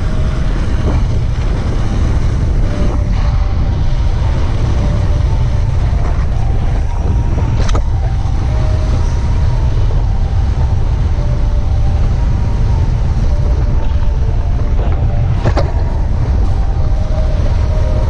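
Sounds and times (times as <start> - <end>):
bike rolling on snow: 0.0 - 18.0
wind rumbling on microphone: 0.0 - 18.0.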